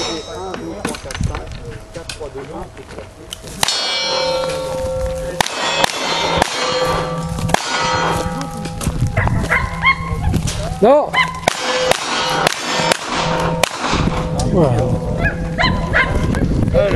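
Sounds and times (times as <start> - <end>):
steel targets ringing: 0.0 - 1.2, 3.4 - 15.0
gunshots: 3.6 - 4.7, 5.3 - 8.4, 11.3 - 14.5.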